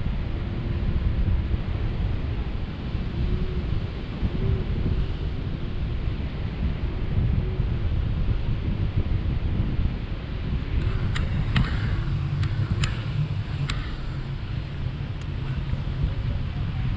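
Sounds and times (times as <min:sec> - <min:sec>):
wind buffeting microphone: 0:00.0 - 0:16.9.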